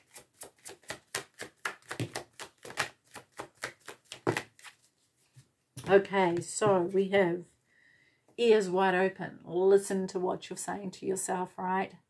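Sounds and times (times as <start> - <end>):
cards being shuffled: 0.0 - 5.4.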